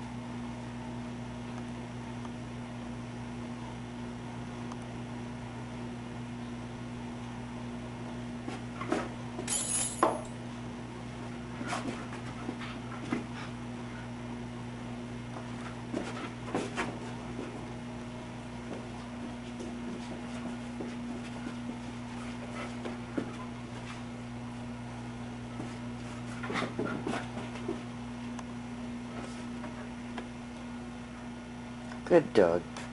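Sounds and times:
steady low hum: 0.0 - 32.9.

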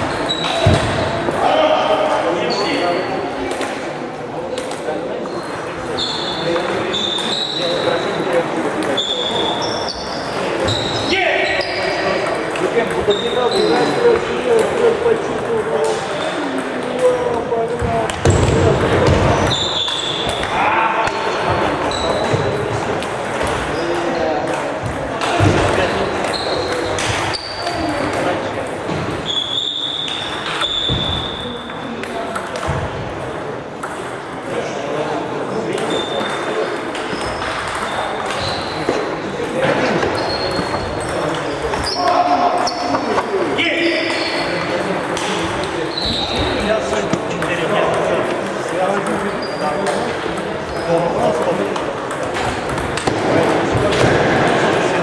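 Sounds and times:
background chatter: 0.0 - 55.0
table tennis balls clicking: 31.6 - 34.6, 35.7 - 38.4, 47.1 - 53.6.

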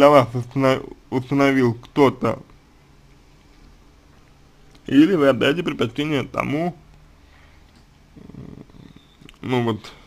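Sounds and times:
faint low hum: 0.0 - 10.0
man saying uh: 8.2 - 10.0.

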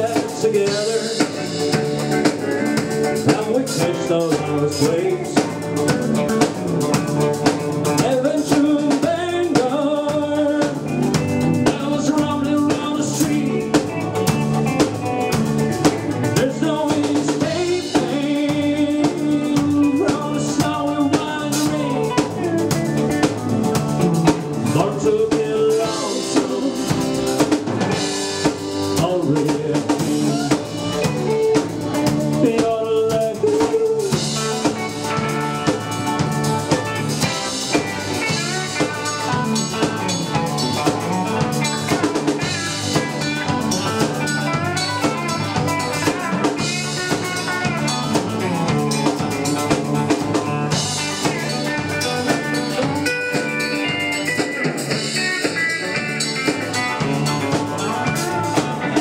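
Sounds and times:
drum kit beat: 0.0 - 59.0
electric guitars: 0.0 - 59.0.

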